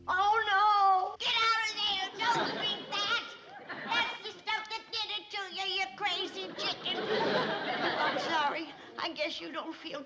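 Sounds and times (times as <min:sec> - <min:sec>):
babble of overlapping voices: 0:01.3 - 0:10.0.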